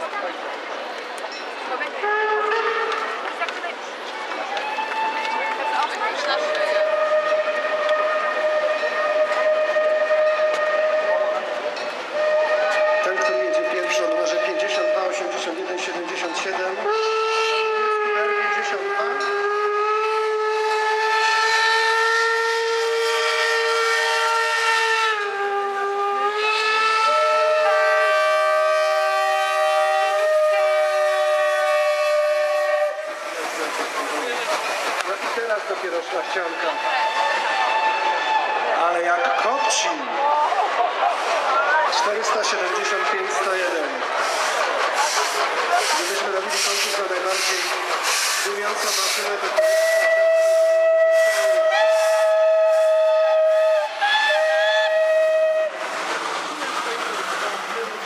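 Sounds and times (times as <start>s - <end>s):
steam locomotive whistles: 2.0s - 3.5s, 4.4s - 39.8s, 42.6s - 57.5s.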